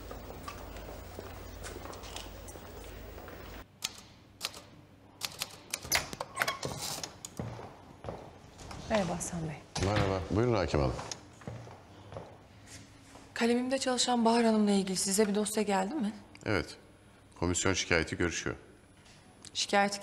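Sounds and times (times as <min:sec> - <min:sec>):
low background hum: 0:00.0 - 0:20.0.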